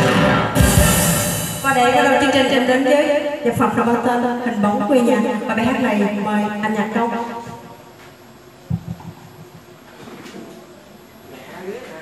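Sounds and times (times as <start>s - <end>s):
faint steady hum: 0.0s - 12.0s
muffled low thumps: 8.6s - 9.7s.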